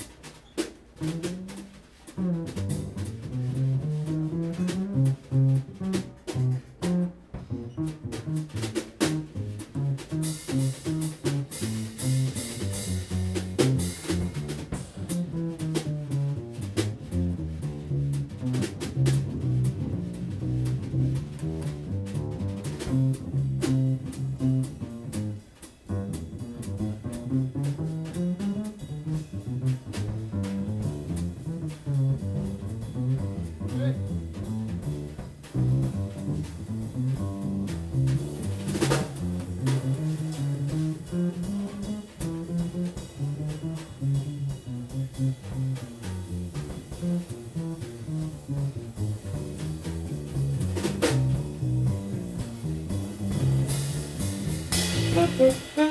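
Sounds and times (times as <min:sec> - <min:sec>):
drum kit and cymbals: 0:00.0 - 0:55.9
plucked double bass: 0:00.0 - 0:55.9.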